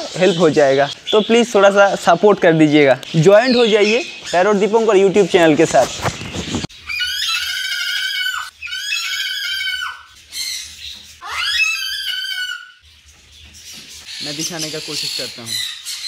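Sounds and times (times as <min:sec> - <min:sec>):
cockatoo screaming: 0:06.8 - 0:10.6, 0:11.2 - 0:12.8.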